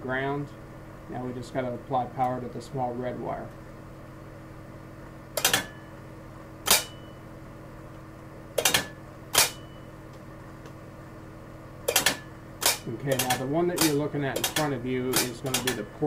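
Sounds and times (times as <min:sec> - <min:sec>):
solenoid valves clacking: 0:11.9 - 0:15.9.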